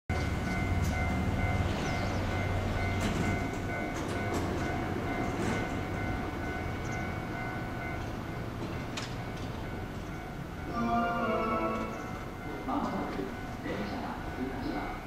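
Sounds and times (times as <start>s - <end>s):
high electronic tone: 10.7s - 12.4s.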